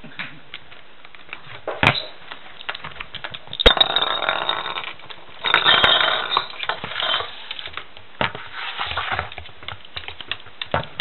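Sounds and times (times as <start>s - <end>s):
plastic ball rattling in plastic bowl: 2.6s - 7.8s.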